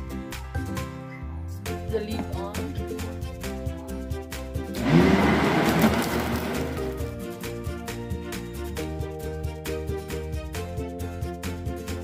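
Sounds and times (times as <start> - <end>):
background music with steady beat: 0.0 - 12.0
blender motor whining: 4.7 - 7.1.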